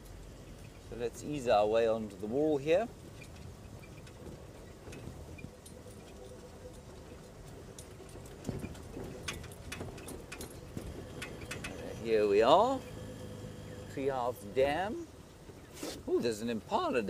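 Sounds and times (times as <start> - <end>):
vehicle engine rumble: 0.0 - 17.0
knocks and clicks from vehicle body: 8.3 - 11.9.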